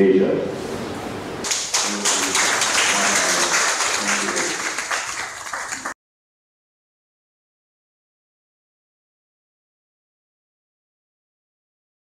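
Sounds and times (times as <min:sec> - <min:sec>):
audience applauding: 0:01.4 - 0:06.0.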